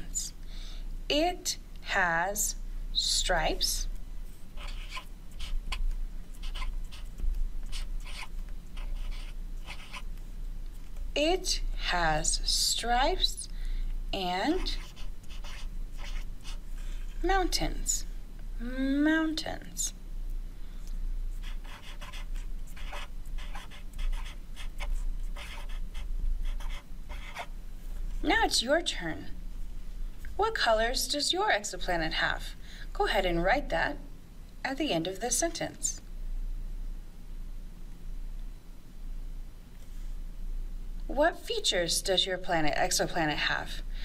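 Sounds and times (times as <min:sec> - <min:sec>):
marker scratching on paper: 0:04.6 - 0:10.1, 0:14.3 - 0:16.6, 0:21.3 - 0:27.5.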